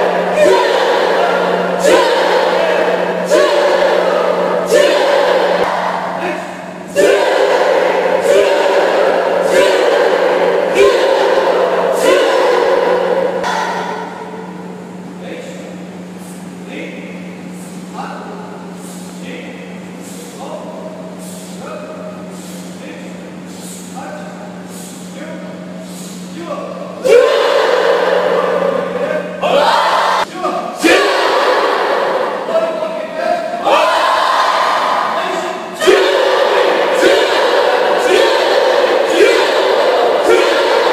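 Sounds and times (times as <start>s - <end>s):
class calling out in unison: 0.0s - 14.3s, 26.5s - 40.9s
steady low hum: 0.0s - 40.9s.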